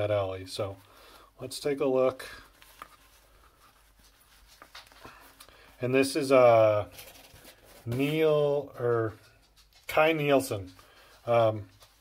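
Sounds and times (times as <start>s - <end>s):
person speaking: 0.0s - 12.0s
leather sleeve rustling: 1.6s - 8.8s.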